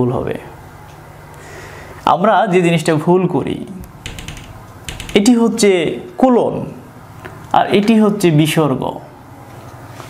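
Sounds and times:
marker tapping on whiteboard: 0:04.0 - 0:05.4.

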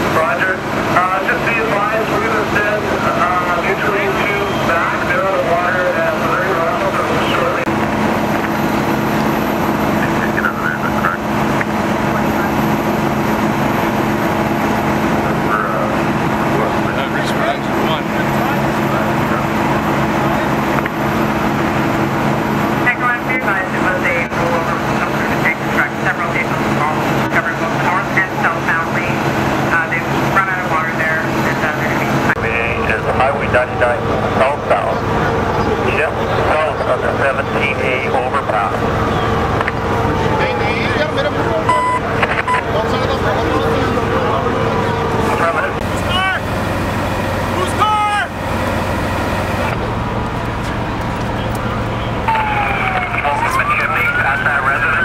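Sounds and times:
fire engine motor drone: 0:00.0 - 0:55.0
higher steady hum: 0:00.0 - 0:55.0
voices talking: 0:00.0 - 0:55.0.

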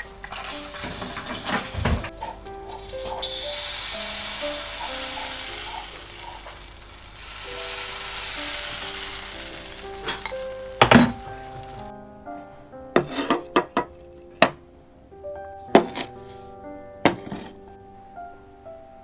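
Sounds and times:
background music: 0:00.0 - 0:19.0
batter sizzling in a wok: 0:02.7 - 0:11.9.

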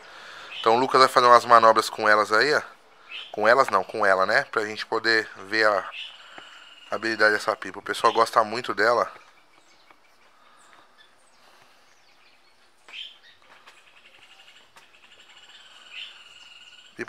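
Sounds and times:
faint bird chirps: 0:00.0 - 0:17.0.

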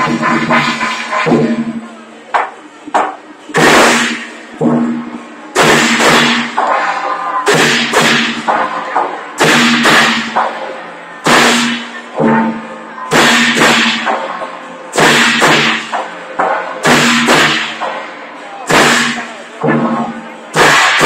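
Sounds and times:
hand cymbals clashing: 0:00.0 - 0:01.8, 0:03.6 - 0:20.0, 0:20.6 - 0:21.0.

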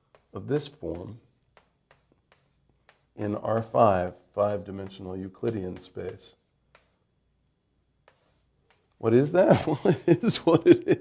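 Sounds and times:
writing taps on a board: 0:00.1 - 0:03.9, 0:04.7 - 0:07.0, 0:08.0 - 0:08.9.

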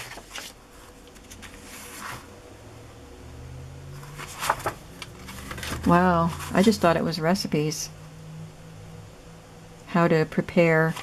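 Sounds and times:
paper cards rustling: 0:00.0 - 0:02.3, 0:04.0 - 0:06.8
faint low hum: 0:00.0 - 0:11.0.

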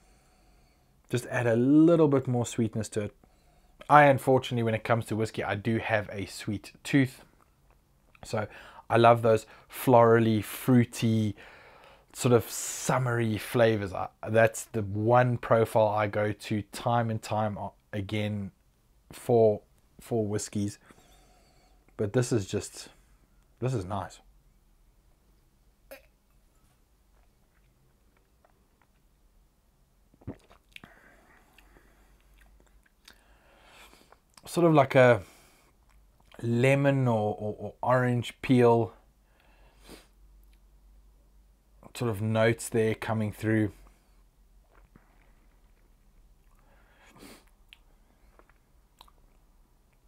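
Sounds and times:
tongue clicks: 0:25.9 - 0:26.4, 0:47.4 - 0:50.0
lip smacks: 0:30.1 - 0:33.2, 0:47.4 - 0:50.0.

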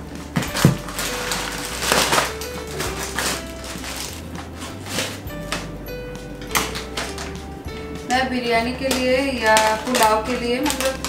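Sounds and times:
music with bass line: 0:00.0 - 0:11.0.

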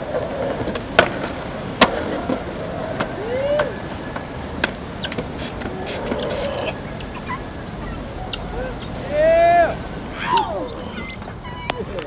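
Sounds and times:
skateboard clacks: 0:00.0 - 0:07.5
skateboard wheels rolling: 0:00.0 - 0:12.0.

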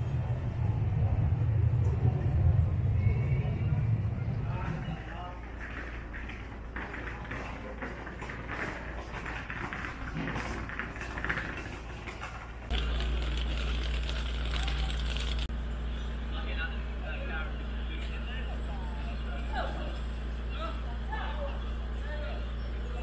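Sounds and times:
low rumble: 0:00.0 - 0:06.7
indistinct voices: 0:00.0 - 0:09.4.

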